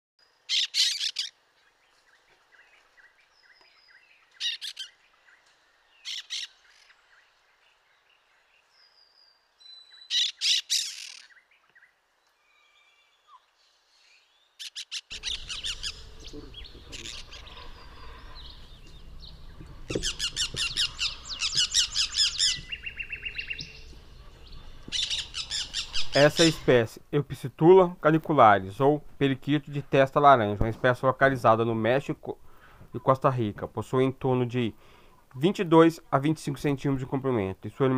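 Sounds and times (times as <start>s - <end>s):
parakeets screeching: 0.5s - 1.3s, 4.4s - 5.0s, 10.1s - 11.3s, 14.6s - 26.7s.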